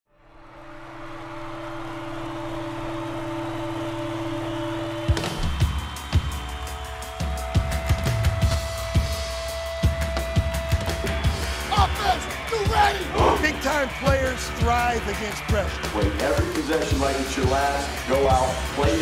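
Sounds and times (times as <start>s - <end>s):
percussive beat: 7.5s - 17.7s.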